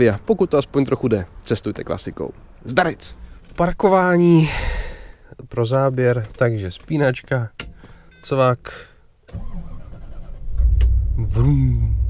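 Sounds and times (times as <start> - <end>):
car starter cranking: 9.3 - 11.0
car engine rumbling: 9.3 - 12.0.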